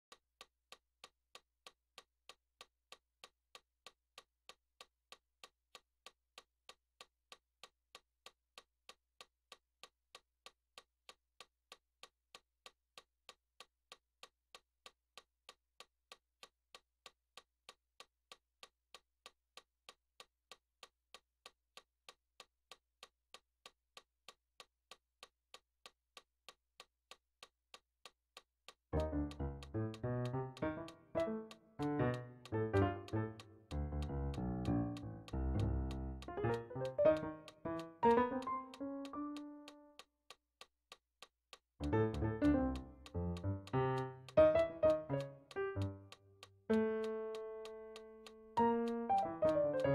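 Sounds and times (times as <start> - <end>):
steady ticking clicks: 0.0 - 49.9.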